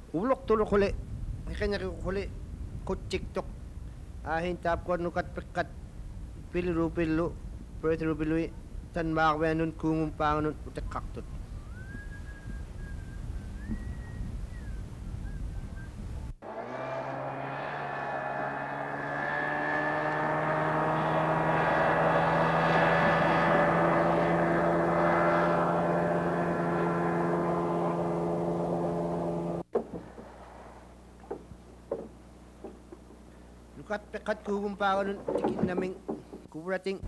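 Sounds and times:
wind rumbling on microphone: 0:00.6 - 0:16.4
outboard motor running: 0:20.4 - 0:32.8.

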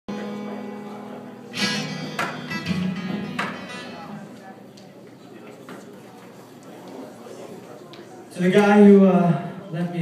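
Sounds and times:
acoustic guitar strumming: 0:00.1 - 0:04.3.

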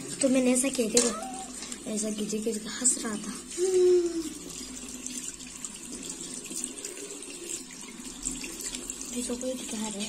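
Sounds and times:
tap running into washbasin: 0:00.0 - 0:10.0.

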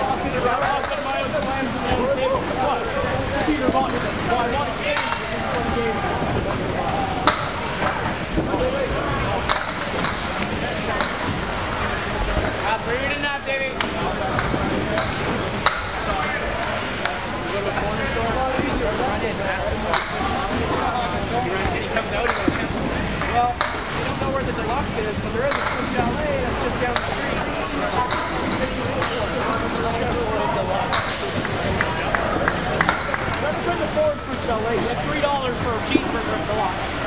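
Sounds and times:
bowling balls rolling on wood: 0:00.0 - 0:37.0
chatter of people: 0:00.0 - 0:37.0
balls clacking against pins: 0:03.6 - 0:05.7, 0:21.6 - 0:26.2.

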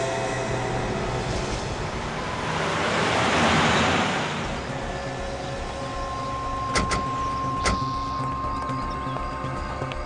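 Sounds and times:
background music with high tone: 0:04.4 - 0:10.0.

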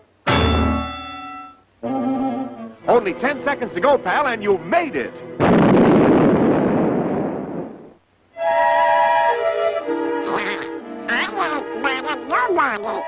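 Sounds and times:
orchestral music with held chords: 0:00.3 - 0:05.4, 0:08.4 - 0:13.0
cartoon explosion blast: 0:05.4 - 0:08.0
cartoon duck quacking voice: 0:10.2 - 0:13.0.

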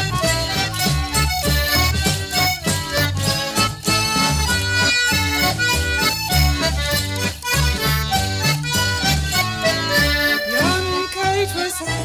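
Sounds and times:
free-reed instruments melody: 0:00.0 - 0:12.0
steady bass notes: 0:00.0 - 0:12.0.

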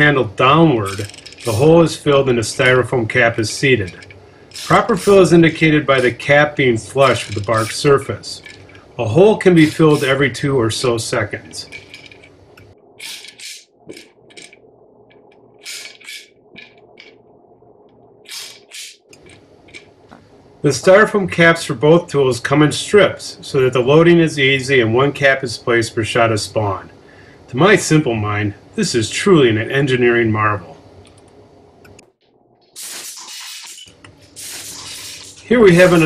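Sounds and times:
loud steady hiss: 0:00.0 - 0:11.6, 0:32.8 - 0:36.0
faint steady hum: 0:00.0 - 0:32.8, 0:33.8 - 0:36.0
scratchy crunches of inoculation gun: 0:04.5 - 0:05.3.

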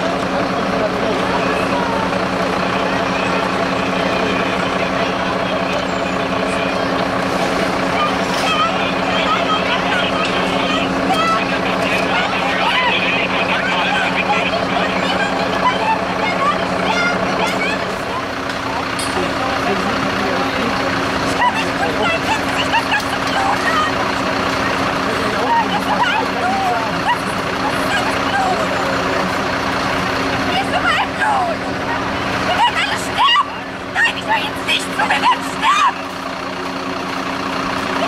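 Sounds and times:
crowd talking: 0:00.0 - 0:38.0
vehicle engine idling: 0:00.0 - 0:38.0.

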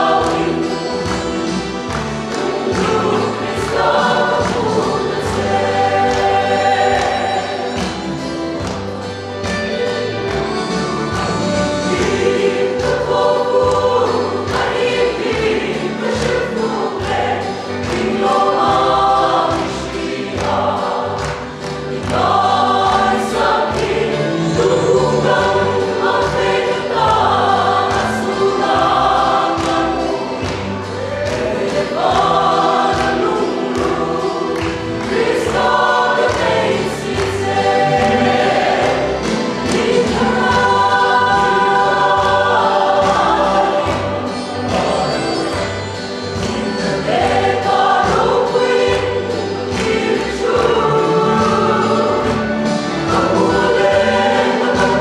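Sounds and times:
choir singing gospel song: 0:00.0 - 0:55.0.

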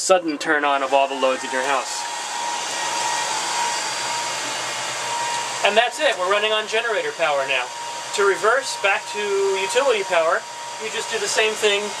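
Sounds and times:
machine whirring with high whine: 0:01.0 - 0:12.0.

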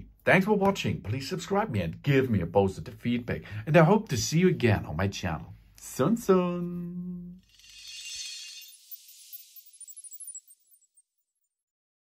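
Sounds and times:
glassy sparkling shimmer effect: 0:07.4 - 0:11.5
high tinkles: 0:07.4 - 0:11.6.

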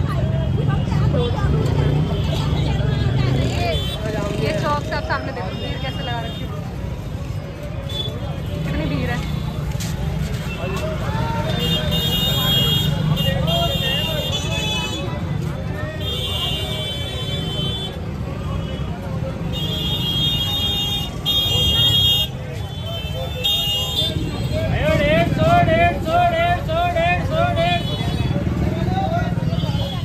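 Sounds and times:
crowd voices: 0:00.0 - 0:30.0.

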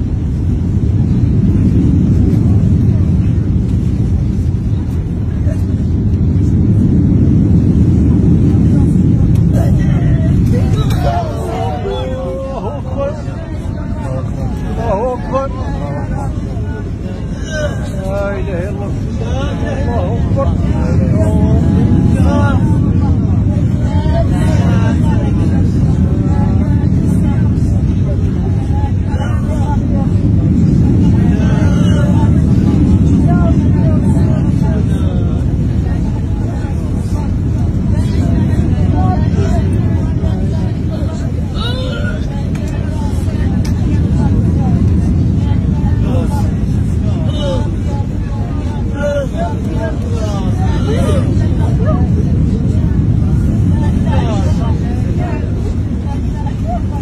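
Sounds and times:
airliner cabin roar: 0:00.0 - 0:57.0
passengers calling out: 0:00.0 - 0:57.0.

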